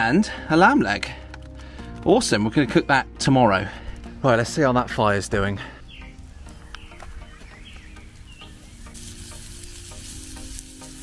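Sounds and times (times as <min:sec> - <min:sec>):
birds chirping: 0:00.0 - 0:11.0
fire crackling: 0:00.2 - 0:11.0
burger patties sizzling on grill: 0:08.0 - 0:11.0.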